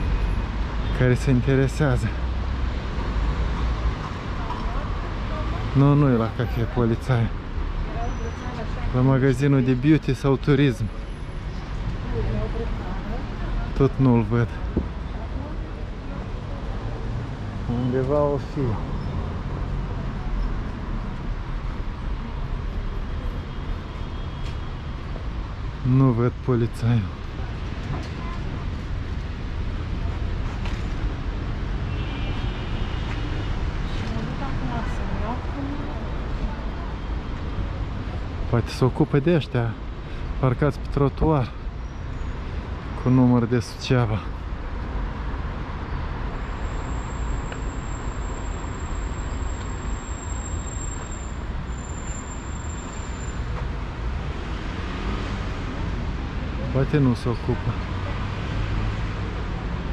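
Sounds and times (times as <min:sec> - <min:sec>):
low traffic rumble: 0:00.0 - 0:59.9.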